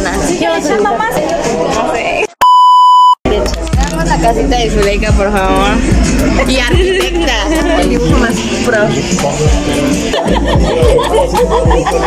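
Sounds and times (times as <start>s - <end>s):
censor bleep tone: 2.4s - 3.2s.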